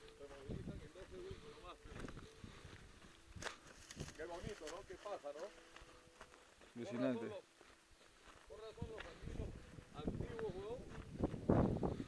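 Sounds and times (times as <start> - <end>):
footsteps on rocky trail: 0.0 - 12.0
sharp crunch underfoot: 3.1 - 7.0.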